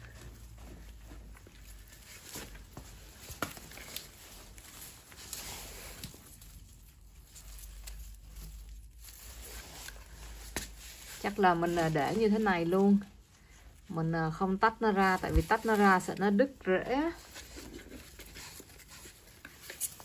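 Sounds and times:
soil rustling and crumbling: 0.0 - 13.2, 13.9 - 18.0.

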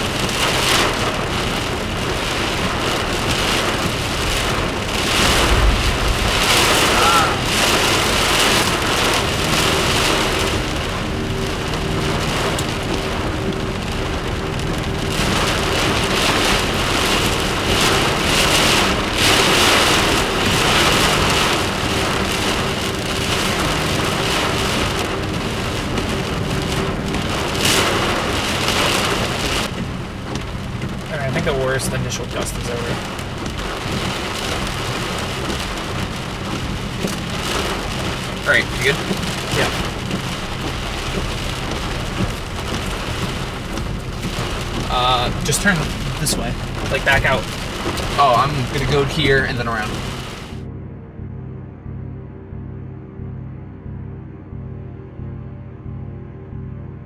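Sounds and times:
windshield wipers running: 0.0 - 50.5
heavy rain pelting a car: 0.0 - 50.6
wind gusts: 0.0 - 50.6.

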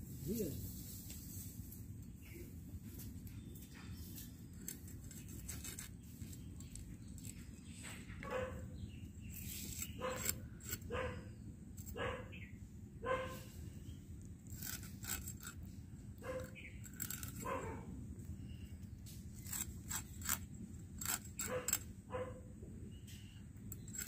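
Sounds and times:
knife scraping fish scales: 4.1 - 8.0, 9.3 - 11.0, 14.4 - 17.6, 19.1 - 21.9, 23.2 - 24.0
dog barking: 8.2 - 8.6, 10.0 - 11.2, 12.0 - 12.3, 13.0 - 13.5, 16.2 - 16.6, 17.4 - 17.9, 21.5 - 22.5.

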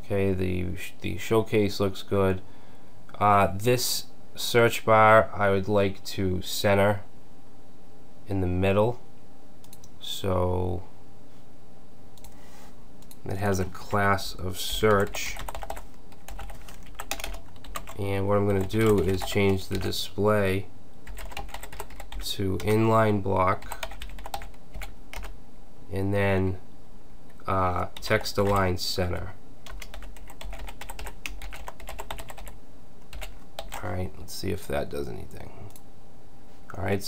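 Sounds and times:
keyboard typing clicks: 14.9 - 18.0, 29.7 - 33.8.

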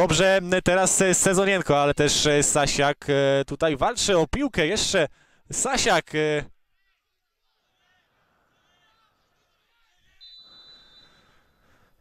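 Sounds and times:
faint stadium ambience: 0.0 - 12.0
referee's whistle blast: 10.1 - 11.4.

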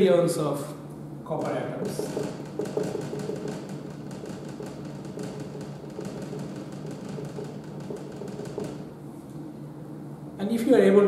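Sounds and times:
marker tapping on whiteboard: 1.8 - 8.9.

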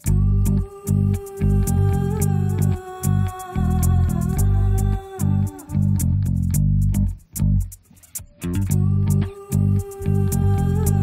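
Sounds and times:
electric bass guitar low notes: 0.0 - 11.0
sharp high ticks: 0.0 - 11.0.

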